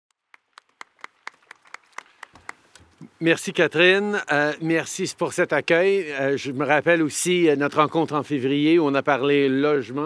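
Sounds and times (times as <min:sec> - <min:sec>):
hand clapping: 0:00.3 - 0:03.0.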